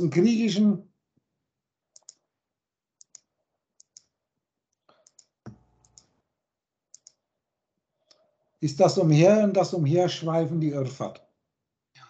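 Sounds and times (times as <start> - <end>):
computer mouse clicking: 2.0 - 2.2, 3.0 - 4.1, 4.9 - 6.1, 6.9 - 7.2.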